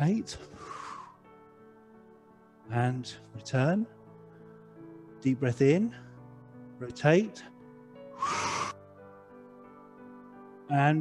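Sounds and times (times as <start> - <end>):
soft music of held tones: 0.0 - 11.0
person breathing hard through mouth: 0.5 - 1.2, 8.2 - 8.8.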